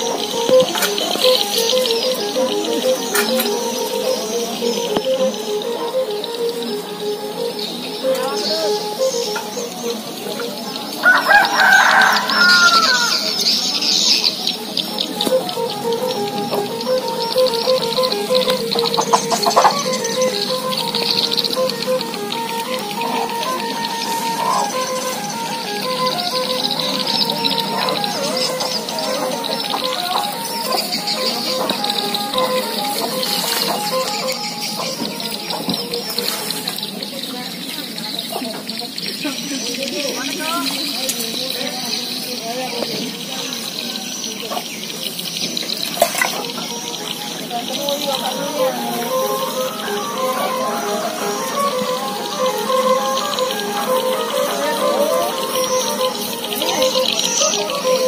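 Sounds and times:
small birds chirping: 0.0s - 58.0s
rooster crowing: 11.0s - 13.5s.

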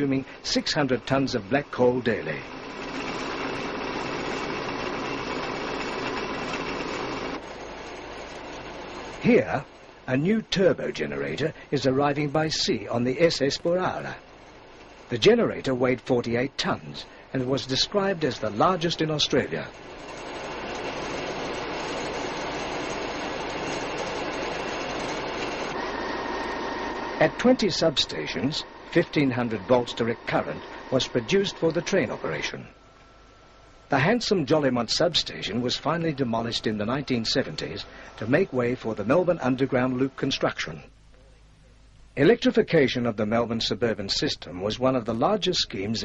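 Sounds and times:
machinery noise: 0.0s - 40.9s
steady rushing noise: 16.0s - 40.0s.

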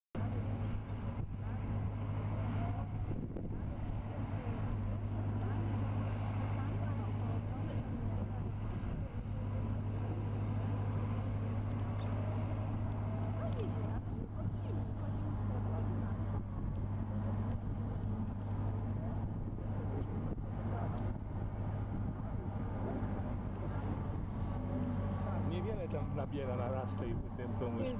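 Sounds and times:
low engine hum: 0.2s - 27.9s.

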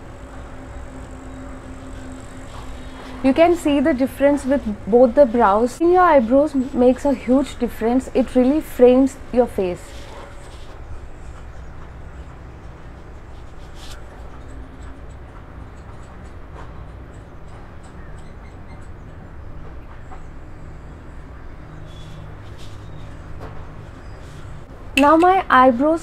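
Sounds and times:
low background hum: 0.0s - 26.0s.

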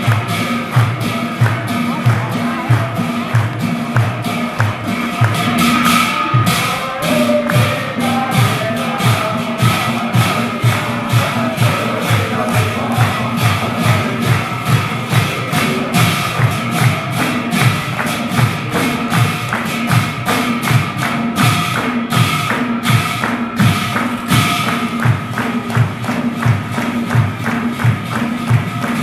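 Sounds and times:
hand-clapping: 0.0s - 29.0s
steady low drum beat: 0.0s - 29.0s
group singing devotional song: 5.0s - 19.0s.

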